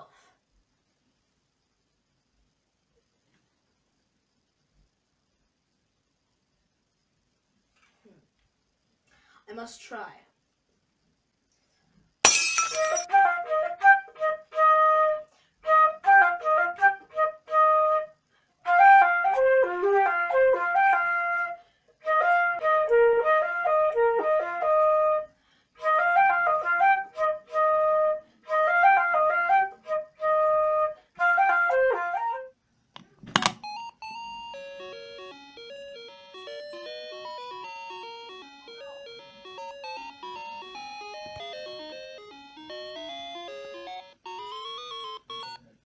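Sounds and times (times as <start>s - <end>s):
concert flute playing solo: 13.1s - 32.5s.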